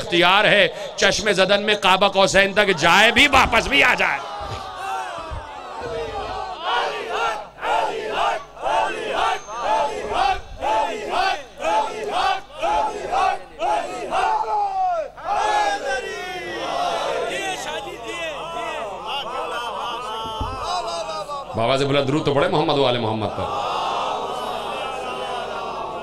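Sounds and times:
crowd of men chanting: 2.5s - 22.3s, 23.2s - 26.0s.

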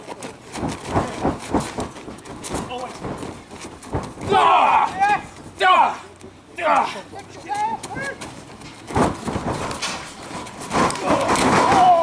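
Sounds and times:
people shouting: 4.2s - 8.2s, 11.0s - 12.0s
body thudding on ring mat: 8.9s - 12.0s
long falling yell: 11.5s - 12.0s.

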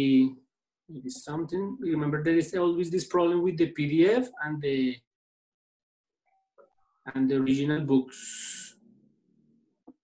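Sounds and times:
person speaking: 7.0s - 9.1s.

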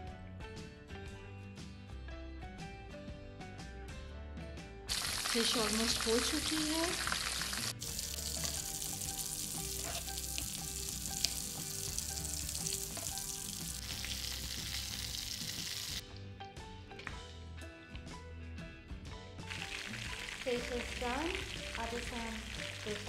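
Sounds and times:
fish frying in hot oil: 4.9s - 16.0s, 19.5s - 23.0s.

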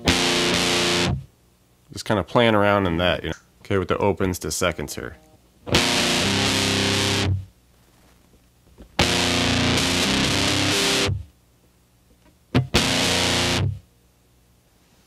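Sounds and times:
distorted electric guitar chords: 0.0s - 1.3s, 5.2s - 7.5s, 9.0s - 11.3s, 12.5s - 13.8s.

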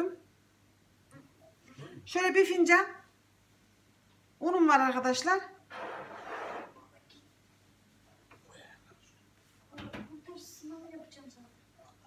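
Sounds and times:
breathy whisper: 8.4s - 9.2s.

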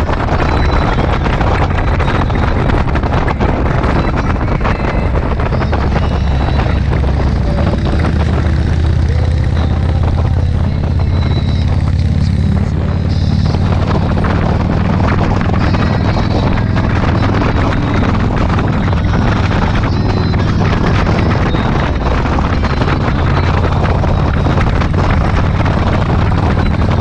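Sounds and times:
motorcycle engine running: 0.0s - 27.0s
wind buffeting microphone: 0.0s - 27.0s.

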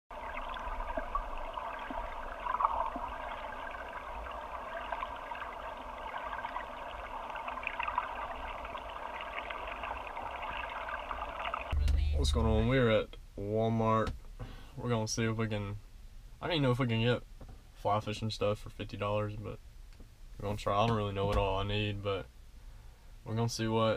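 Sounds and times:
muffled underwater stream flow: 0.1s - 12.7s
low rumble inside vehicle cab: 11.8s - 14.4s.

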